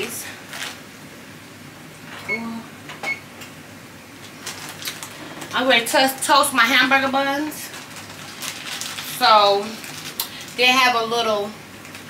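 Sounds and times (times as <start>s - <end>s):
plastic rustle: 0.5s - 0.8s, 4.2s - 5.6s, 7.3s - 10.9s, 11.8s - 12.0s.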